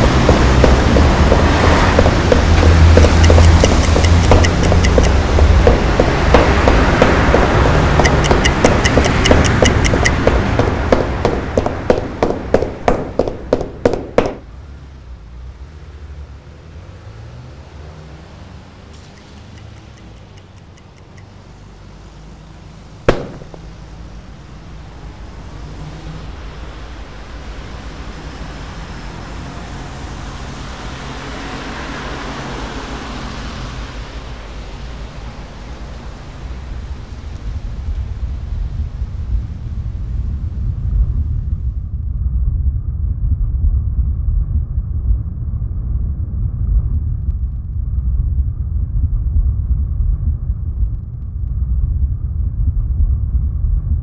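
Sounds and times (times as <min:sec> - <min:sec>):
deep rumble: 0:00.0 - 0:17.8, 0:22.9 - 0:31.1, 0:33.5 - 0:54.0
wash of noise: 0:00.0 - 0:20.0, 0:22.2 - 0:41.0
sharp click: 0:03.0 - 0:05.2, 0:08.0 - 0:10.2.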